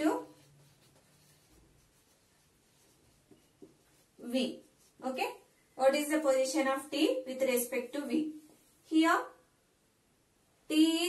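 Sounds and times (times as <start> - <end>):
marker scratching on whiteboard: 0.0 - 5.4.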